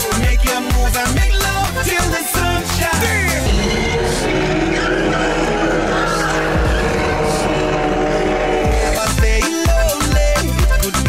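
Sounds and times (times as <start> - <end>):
background music: 0.0 - 11.0
car engine revving hard: 3.4 - 9.0.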